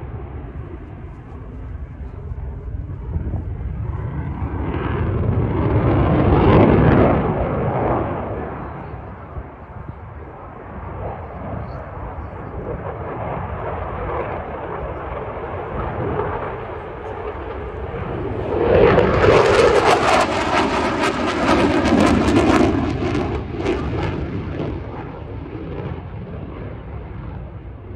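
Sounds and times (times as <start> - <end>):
fighter jet engine roaring: 0.0 - 27.9.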